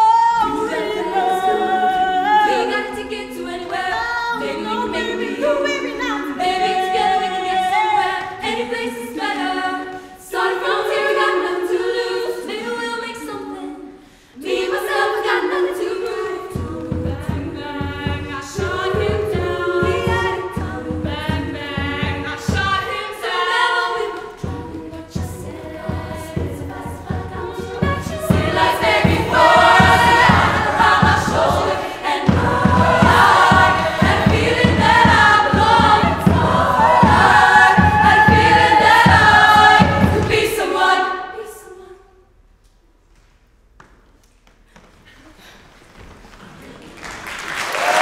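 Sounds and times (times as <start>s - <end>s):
women's choir singing: 0.0s - 42.3s
steady low beat: 24.4s - 40.8s.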